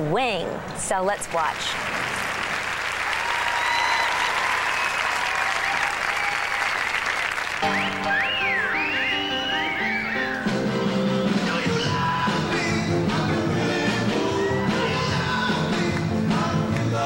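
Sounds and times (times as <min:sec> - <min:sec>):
audience applauding: 0:01.5 - 0:10.5
swing dance music: 0:07.5 - 0:17.0.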